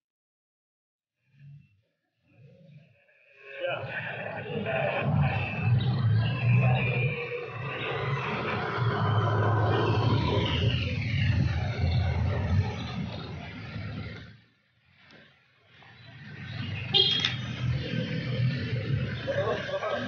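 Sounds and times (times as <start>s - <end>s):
suv engine and tyre noise: 3.6s - 20.0s.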